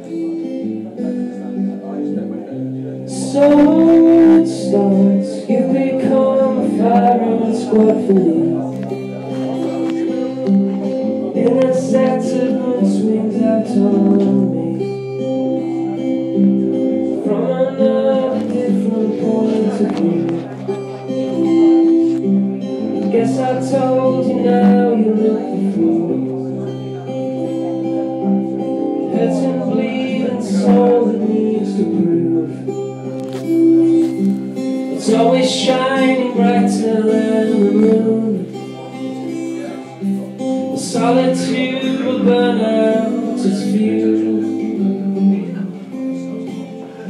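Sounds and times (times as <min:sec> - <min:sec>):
acoustic guitar strumming chords: 0:00.0 - 0:47.0.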